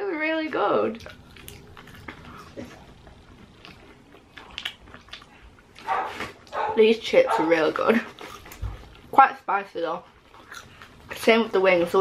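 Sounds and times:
chewing chips: 0:01.0 - 0:06.5, 0:08.0 - 0:09.1, 0:10.2 - 0:11.1
dog barking: 0:05.8 - 0:07.6.

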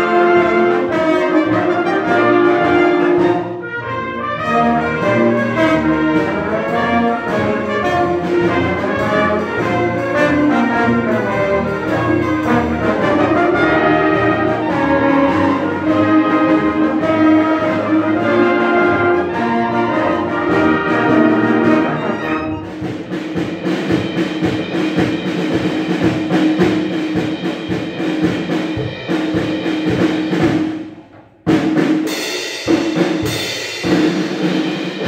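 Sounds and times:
loud accented orchestra chords: 0:00.0 - 0:35.0
orchestra playing: 0:00.0 - 0:35.0.

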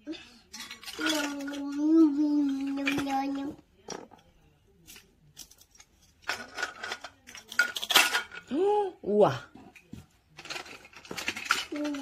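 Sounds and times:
plastic toy food clattering: 0:00.5 - 0:04.2, 0:04.9 - 0:08.5, 0:10.4 - 0:12.0.

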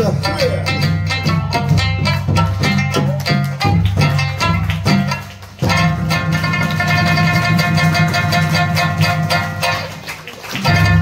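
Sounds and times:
plucked lute music: 0:00.0 - 0:11.0.

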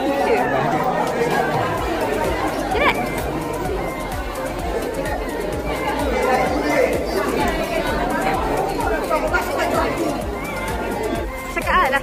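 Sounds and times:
background music with steady beat: 0:00.0 - 0:12.0
crowd chatter: 0:00.0 - 0:12.0.

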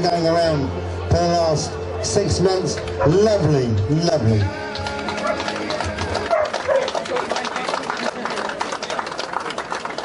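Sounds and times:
crowd clapping: 0:04.5 - 0:10.0
crowd voices: 0:04.5 - 0:10.0
dog barking: 0:06.3 - 0:07.0.

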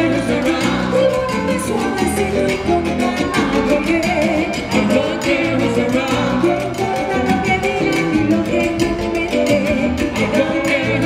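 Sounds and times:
salsa band playing: 0:00.0 - 0:11.0
woman singing: 0:00.0 - 0:11.0.

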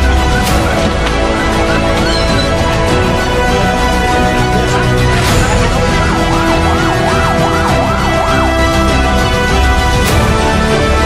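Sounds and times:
background music: 0:00.0 - 0:11.0
emergency siren yelping: 0:04.8 - 0:10.5.

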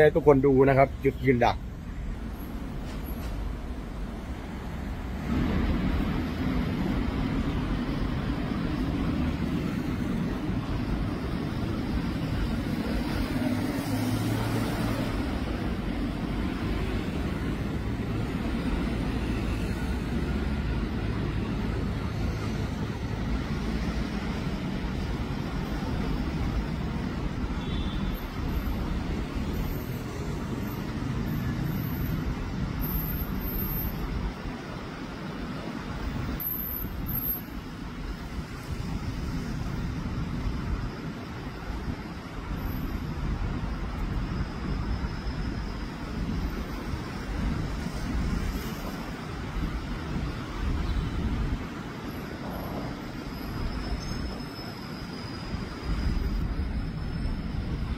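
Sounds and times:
road traffic: 0:00.0 - 0:57.9
car and truck engines running: 0:04.7 - 0:36.4.

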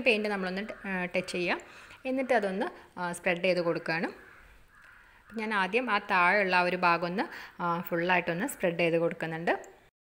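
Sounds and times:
woman talking: 0:00.0 - 0:04.2, 0:05.3 - 0:09.8.

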